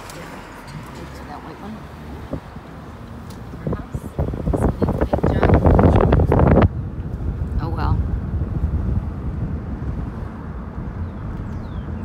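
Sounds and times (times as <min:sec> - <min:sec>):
car engine and road noise: 0:00.0 - 0:12.0
wind buffeting microphone: 0:00.3 - 0:12.0.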